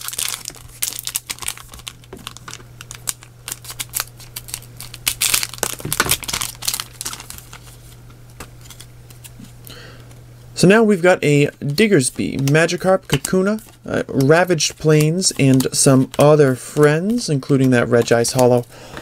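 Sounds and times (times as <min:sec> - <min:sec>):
foil pack crinkling and tearing: 0:00.0 - 0:09.3.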